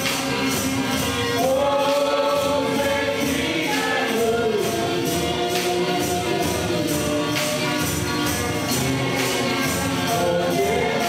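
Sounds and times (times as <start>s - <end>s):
men singing a hymn: 0.0s - 11.0s
percussion with tambourine: 0.0s - 11.0s.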